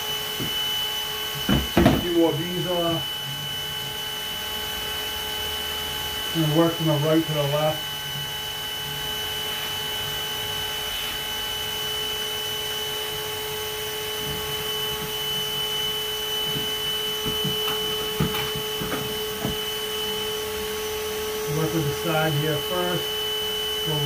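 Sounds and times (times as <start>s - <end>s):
vacuum running: 0.0s - 24.0s
soft knocks: 16.5s - 19.6s.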